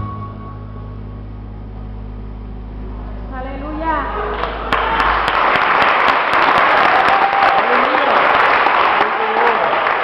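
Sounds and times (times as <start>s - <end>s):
steady low hum: 0.0s - 5.5s.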